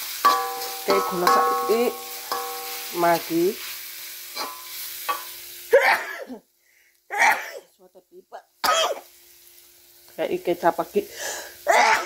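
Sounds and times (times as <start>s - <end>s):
spatula stirring in a wok: 0.0s - 5.7s
spices sizzling in a wok: 0.0s - 12.0s
person coughing: 5.7s - 6.4s, 7.1s - 7.7s, 8.7s - 9.0s.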